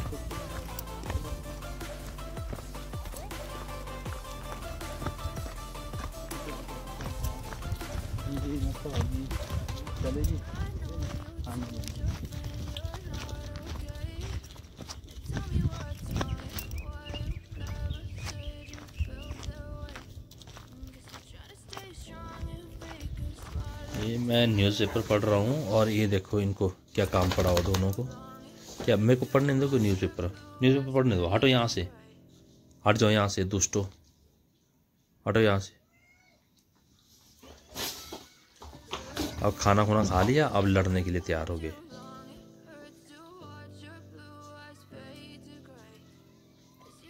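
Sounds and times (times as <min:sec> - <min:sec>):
footsteps on stony path: 0:00.0 - 0:26.1, 0:38.0 - 0:41.1
background music with singing: 0:00.0 - 0:33.3, 0:37.7 - 0:47.0.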